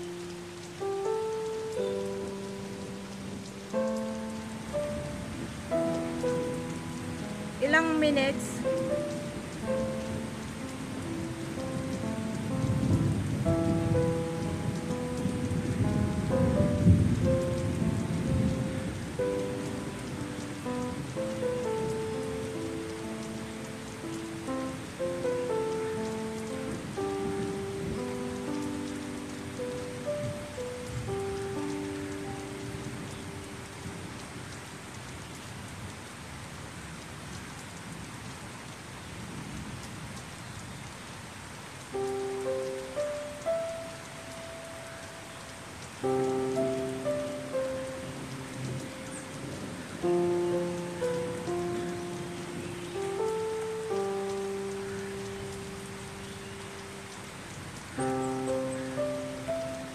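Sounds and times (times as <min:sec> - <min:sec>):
slow calm piano notes: 0:00.0 - 0:35.2, 0:41.7 - 0:59.9
steady rain falling: 0:00.0 - 0:59.9.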